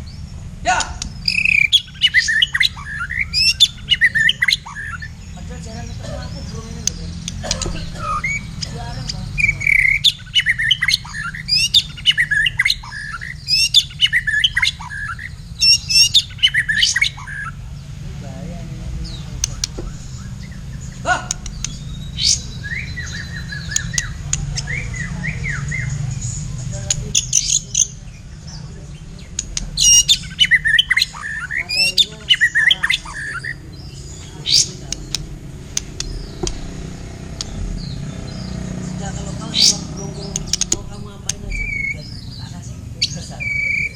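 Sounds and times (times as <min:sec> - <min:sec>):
single bird calls: 0:00.0 - 0:05.2
songbirds whistling and chattering: 0:00.0 - 0:43.9
steady low hum: 0:00.0 - 0:43.9.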